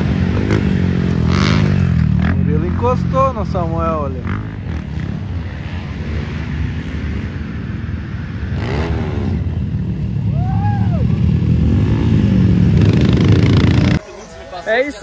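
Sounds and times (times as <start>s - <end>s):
dirt bike engines revving: 0.0s - 15.0s.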